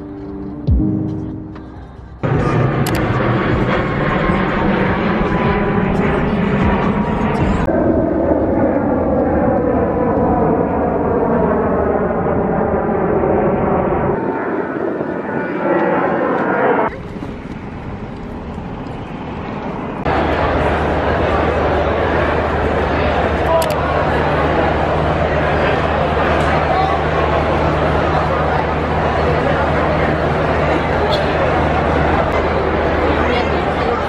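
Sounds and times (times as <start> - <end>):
crowd chatter: 0.0 - 7.8, 8.6 - 34.0
airplane passing overhead: 0.0 - 34.0
hum of busy indoor hall: 0.0 - 34.0.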